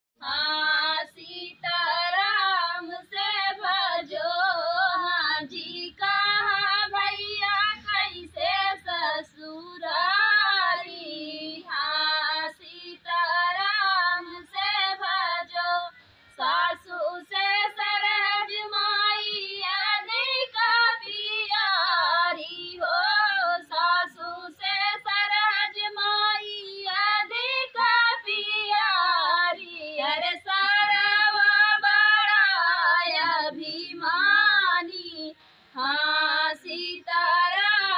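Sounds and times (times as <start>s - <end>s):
women singing unaccompanied: 0.2s - 37.9s.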